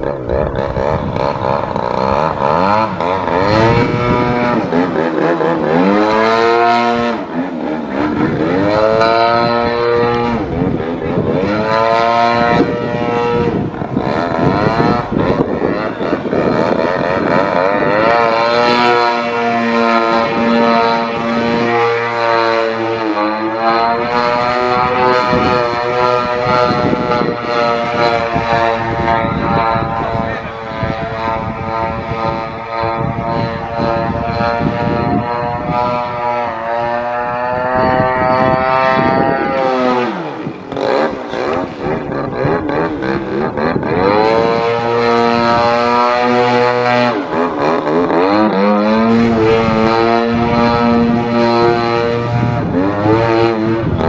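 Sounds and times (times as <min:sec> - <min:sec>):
model plane motor and propeller: 0:00.0 - 0:54.0.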